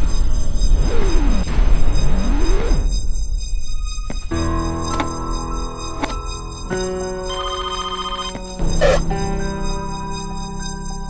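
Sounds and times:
synth music: 0:00.2 - 0:11.0
phone ringtone warbling: 0:07.2 - 0:09.0.

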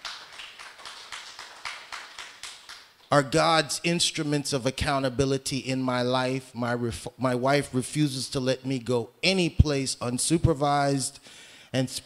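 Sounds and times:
hand clapping: 0:00.0 - 0:03.2.

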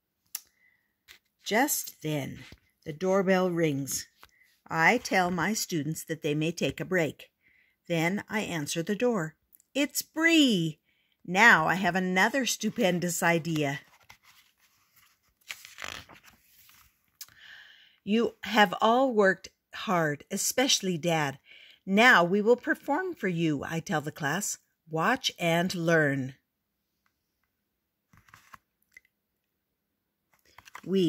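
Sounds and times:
paper rustle: 0:13.7 - 0:17.2, 0:28.1 - 0:28.7, 0:30.4 - 0:30.9
page swish: 0:28.1 - 0:28.6.

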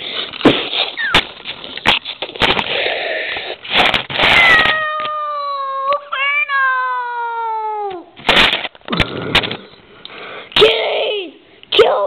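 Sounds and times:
cat meowing: 0:04.2 - 0:06.8.

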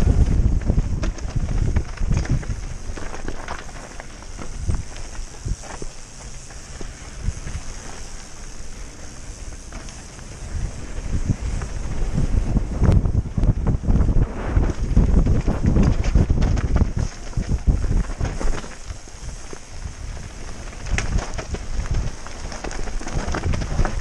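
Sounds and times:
bike knocking and rattling: 0:00.0 - 0:24.0
tyres rolling on dirt: 0:00.0 - 0:24.0
wind buffeting microphone: 0:00.0 - 0:24.0.

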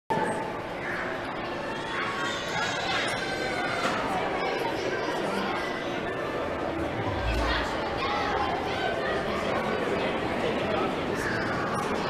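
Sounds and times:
indistinct chatter: 0:00.1 - 0:12.0.

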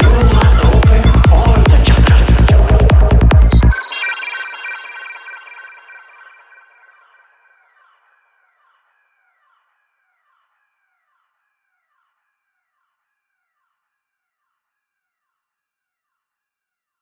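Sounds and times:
synthesizer pitch sweep: 0:00.0 - 0:08.0.

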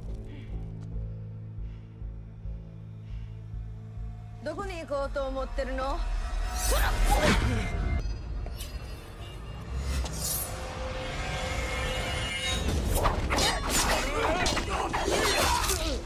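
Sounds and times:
dramatic film music: 0:00.0 - 0:16.0.

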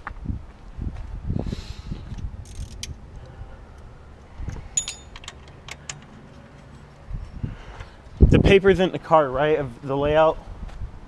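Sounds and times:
metal tools clinking: 0:04.5 - 0:07.4.

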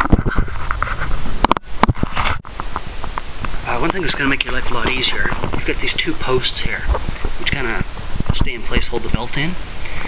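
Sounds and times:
low rumbling: 0:00.0 - 0:10.0.

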